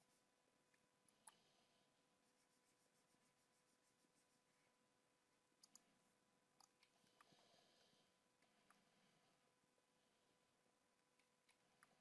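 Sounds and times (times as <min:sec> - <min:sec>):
thin steady hum: 0:00.0 - 0:12.0.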